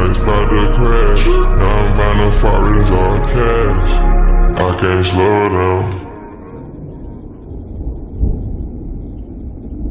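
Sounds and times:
low rumble: 0.0 - 9.9.

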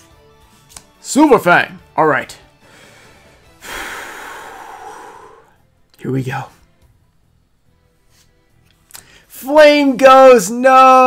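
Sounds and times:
man sighing: 3.6 - 5.6.

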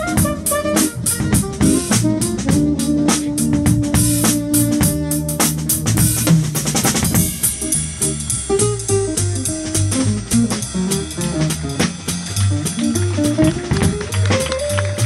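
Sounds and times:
bass line: 0.0 - 15.0
drum kit beat: 0.0 - 15.0
acoustic guitar melody: 8.5 - 15.0.

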